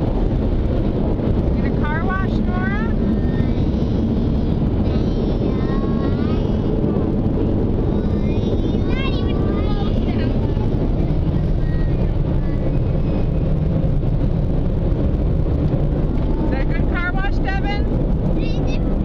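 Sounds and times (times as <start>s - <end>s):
car interior rumble: 0.0s - 19.0s.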